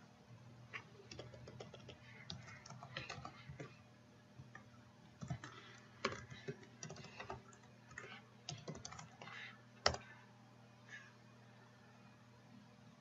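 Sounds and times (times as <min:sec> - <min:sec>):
keyboard typing: 0:00.8 - 0:03.8, 0:04.4 - 0:10.1.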